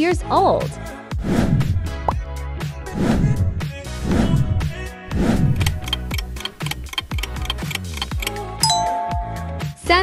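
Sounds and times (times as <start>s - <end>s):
background music with steady beat: 3.7s - 10.0s
two-note ding-dong chime: 8.6s - 9.6s.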